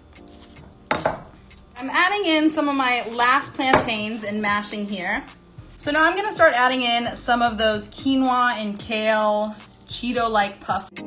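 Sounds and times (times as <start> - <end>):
quiet background music: 0.0 - 11.0
stone pestle knocking in mortar: 0.9 - 1.4.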